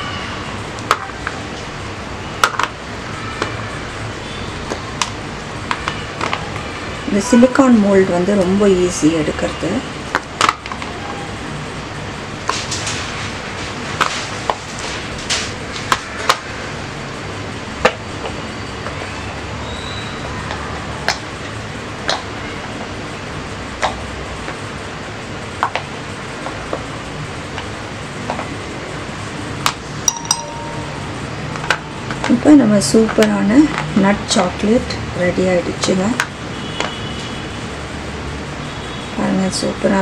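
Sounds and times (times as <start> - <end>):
steady background hum: 0.0 - 40.0.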